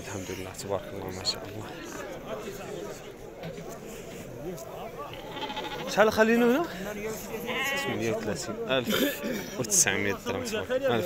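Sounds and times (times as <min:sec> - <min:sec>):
sheep bleating: 0:05.1 - 0:06.2, 0:07.3 - 0:08.2.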